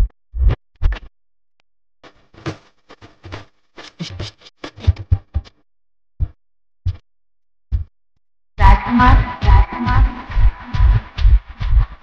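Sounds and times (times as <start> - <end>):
record scratch effects: 2.0 - 5.4, 8.6 - 12.0
dance music over sound system: 8.6 - 11.5.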